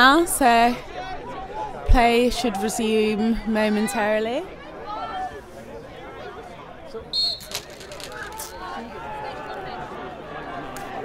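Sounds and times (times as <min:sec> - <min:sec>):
referee's whistle blast: 0:07.1 - 0:07.6.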